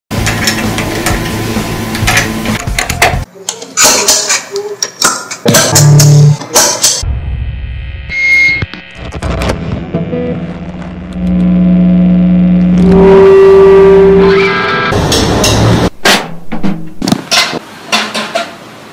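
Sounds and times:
loud steady held tone: 7.0s - 15.0s.

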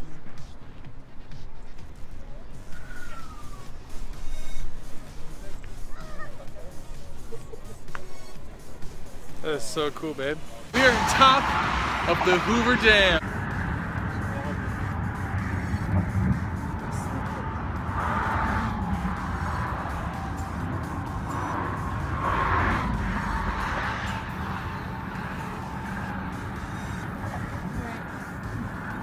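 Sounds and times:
traffic noise: 0.0s - 29.0s
wind rumble on microphone: 13.2s - 29.0s.

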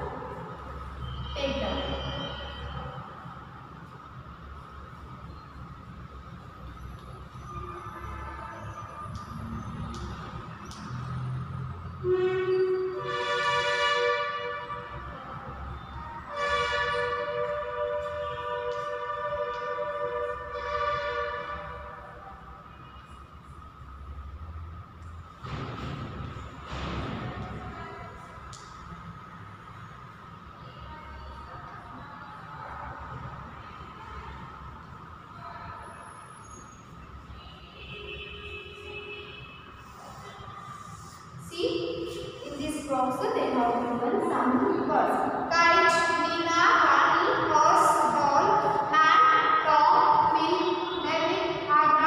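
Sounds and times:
distant train horn blasts: 11.9s - 15.2s, 15.9s - 23.2s.

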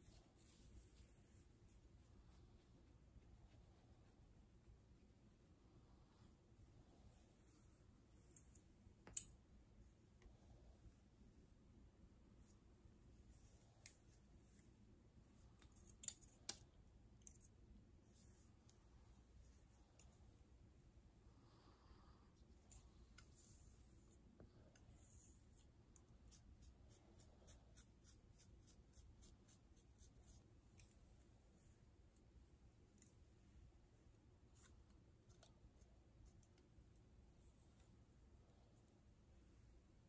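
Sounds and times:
comb and fingernails in hair: 0.0s - 20.6s, 22.4s - 33.4s.

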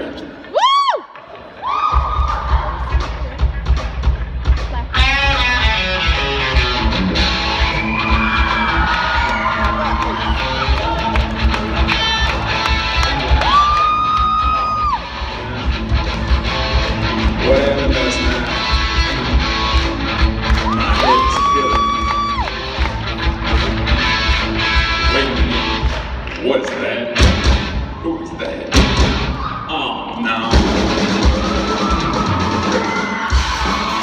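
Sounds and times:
drum kit beat: 1.9s - 26.2s, 27.2s - 27.8s, 28.7s - 29.3s, 30.5s - 34.0s
electric guitars: 4.9s - 26.3s.

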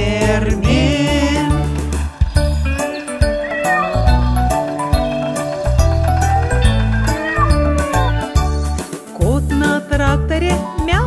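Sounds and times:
bouncy children's song music: 0.0s - 11.0s
cartoon cat meow: 3.4s - 4.1s, 7.0s - 8.3s.

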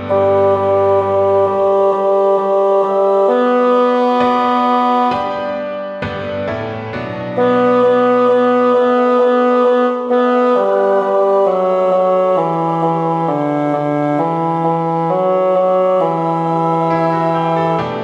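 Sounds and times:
synthesized brass-like choir chords: 0.0s - 6.6s, 7.3s - 18.0s.

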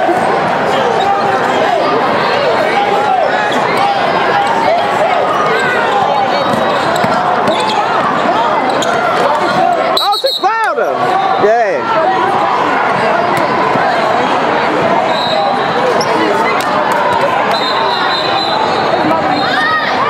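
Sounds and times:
echoing voices: 0.0s - 20.0s
sneakers squeaking: 5.3s - 10.5s, 15.0s - 19.7s
basketball bouncing: 6.4s - 7.7s.

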